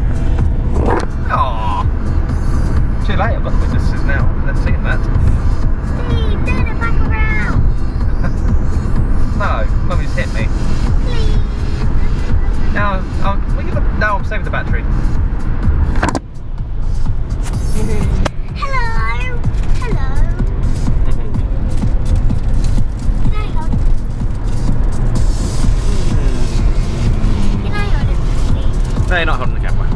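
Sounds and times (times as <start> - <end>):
road and wind rumble in car: 0.0 - 29.9.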